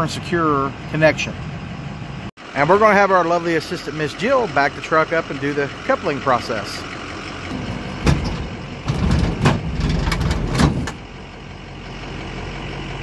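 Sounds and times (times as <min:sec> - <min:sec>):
truck engine idling: 0:00.0 - 0:13.0
metal clunks: 0:07.5 - 0:11.1.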